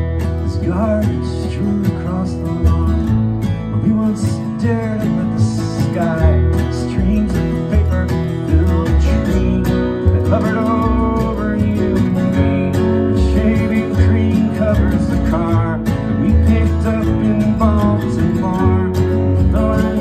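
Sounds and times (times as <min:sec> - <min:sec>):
acoustic guitar strummed: 0:00.0 - 0:20.0
backing track with bass line: 0:00.0 - 0:20.0.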